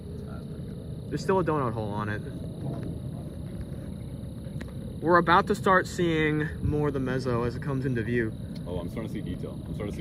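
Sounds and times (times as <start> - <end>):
low rumbling outdoor background noise: 0.0 - 10.0.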